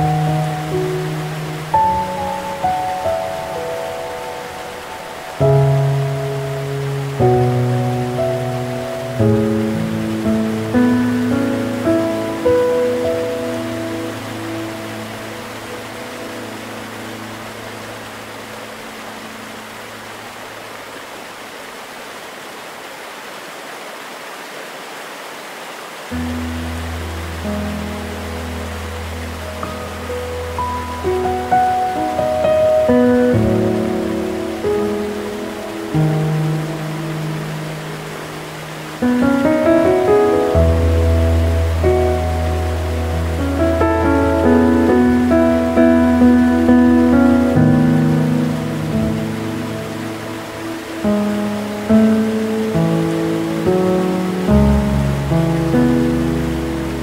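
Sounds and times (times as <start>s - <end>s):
gentle piano music: 0.0s - 21.4s, 26.1s - 57.0s
waterfall rushing: 0.0s - 57.0s.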